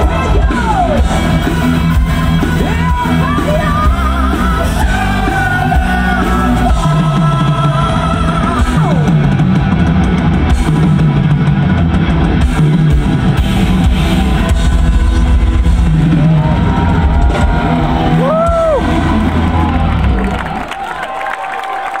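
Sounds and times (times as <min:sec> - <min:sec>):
heavy metal band playing live: 0:00.0 - 0:20.5
crowd and stage sound: 0:00.0 - 0:22.0.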